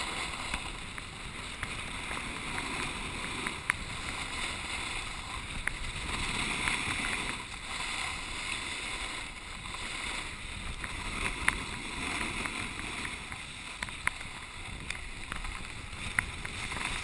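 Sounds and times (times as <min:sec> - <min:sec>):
wind: 0:00.0 - 0:17.0.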